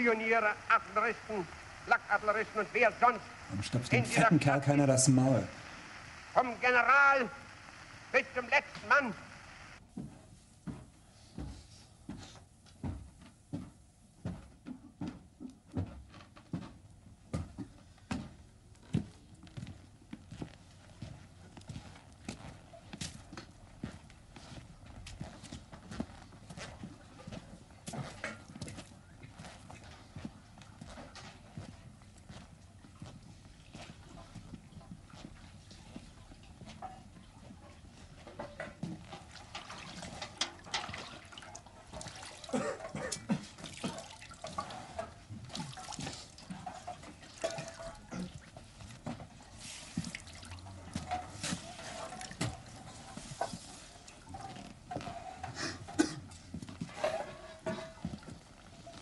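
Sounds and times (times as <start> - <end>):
water splashing in metal bucket: 39.1 - 48.5.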